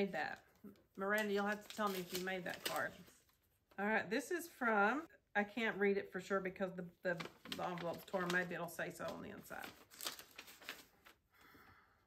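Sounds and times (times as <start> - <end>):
paper rustling and crinkling: 1.0 - 3.4, 7.1 - 11.2.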